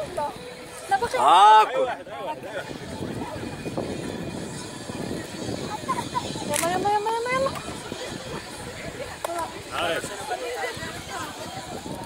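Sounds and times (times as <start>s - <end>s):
outdoor noise: 0.0s - 12.0s.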